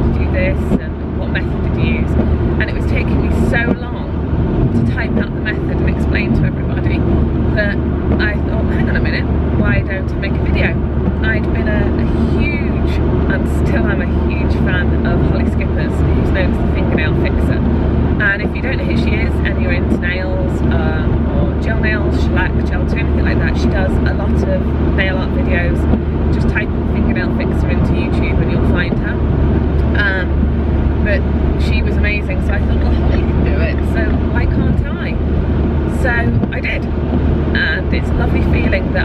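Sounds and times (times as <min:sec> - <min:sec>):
woman talking: 0:00.0 - 0:29.2, 0:29.8 - 0:35.2, 0:35.9 - 0:36.9, 0:37.5 - 0:39.0
car engine and road noise: 0:00.0 - 0:39.0.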